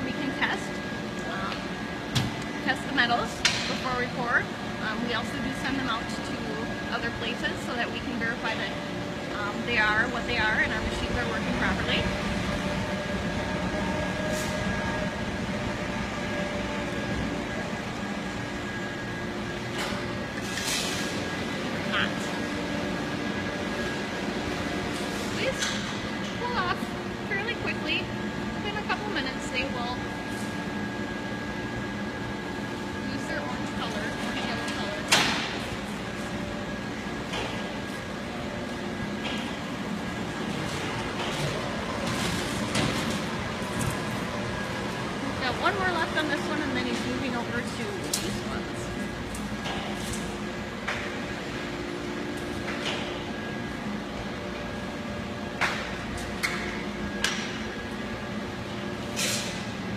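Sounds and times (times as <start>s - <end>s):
foundry machinery hum: 0.0s - 59.9s.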